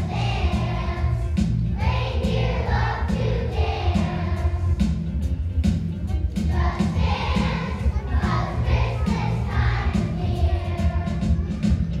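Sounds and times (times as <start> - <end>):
children's choir singing: 0.0 - 5.0, 6.4 - 12.0
instrumental accompaniment with bass beat: 0.0 - 12.0.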